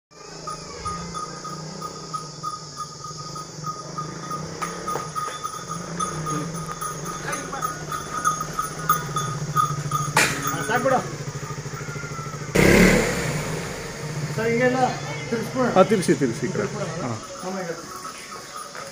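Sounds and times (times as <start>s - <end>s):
motorcycle engine running: 0.2s - 18.9s.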